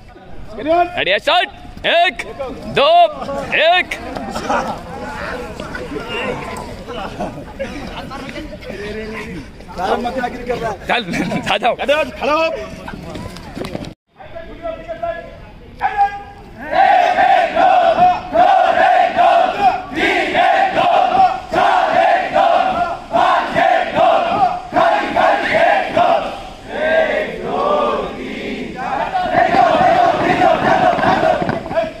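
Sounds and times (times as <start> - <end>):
cadets chanting in unison: 16.6 - 32.0.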